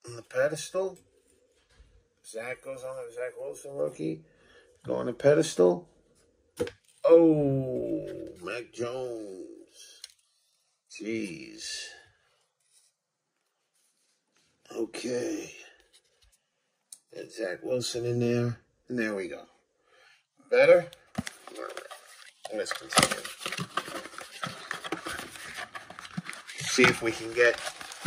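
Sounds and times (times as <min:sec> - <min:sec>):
faint handling sound: 0:12.0 - 0:14.8, 0:15.7 - 0:16.5, 0:21.0 - 0:28.0.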